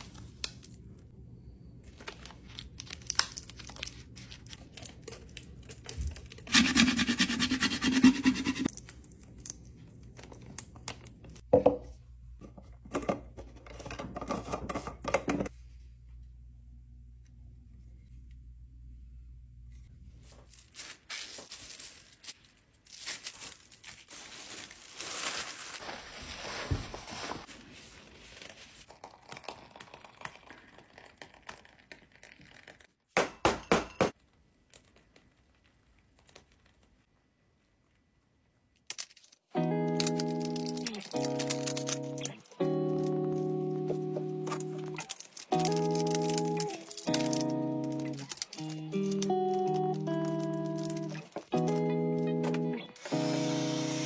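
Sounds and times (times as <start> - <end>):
plastic sheet rustling: 20.2 - 28.9, 44.7 - 51.4.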